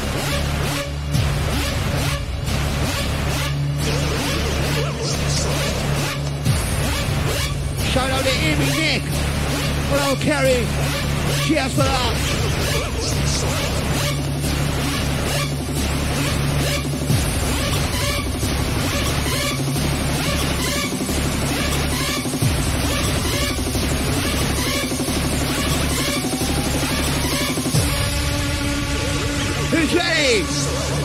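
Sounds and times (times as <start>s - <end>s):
hard-dance music through club speakers: 0.0s - 31.0s.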